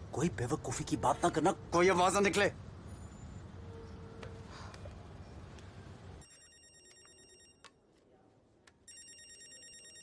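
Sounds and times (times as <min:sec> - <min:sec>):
mobile phone ringtone: 0:06.2 - 0:07.6, 0:08.9 - 0:10.0.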